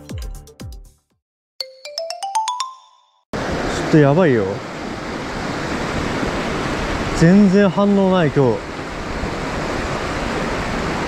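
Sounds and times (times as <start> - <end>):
rising bell-like jingle: 1.6 - 3.3.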